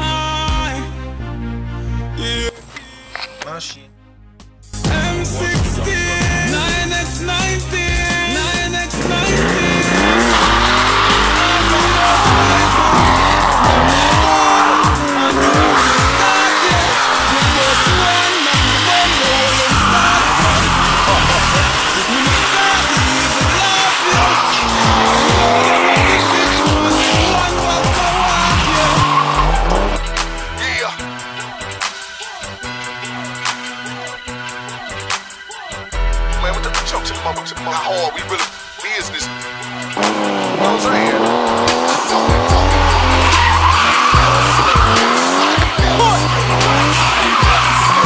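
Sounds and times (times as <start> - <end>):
music: 0.0 - 48.0
engine revving: 5.0 - 32.0, 39.3 - 48.0
tyres squealing on tarmac: 8.0 - 31.0, 39.8 - 48.0.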